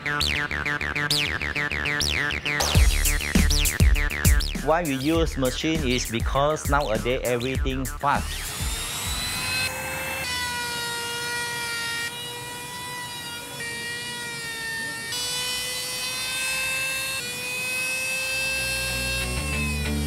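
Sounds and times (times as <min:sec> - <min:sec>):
trim router cutting wood: 0:07.0 - 0:20.0.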